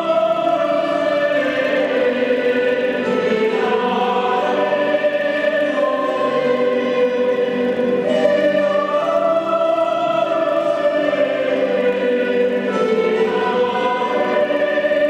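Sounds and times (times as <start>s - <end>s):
mixed choir singing: 0.0s - 15.0s.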